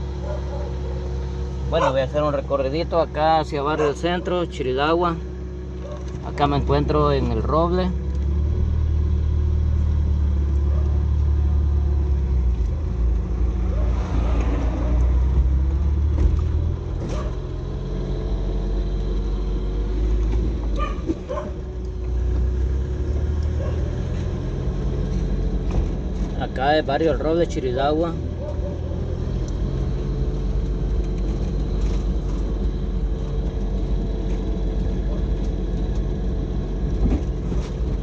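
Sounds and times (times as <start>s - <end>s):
road noise inside cabin: 0.0s - 38.0s
vehicle engine rumble: 0.0s - 38.0s.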